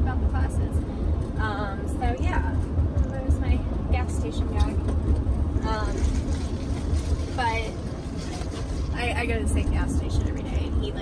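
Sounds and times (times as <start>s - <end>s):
road and engine drone in van: 0.0s - 11.0s.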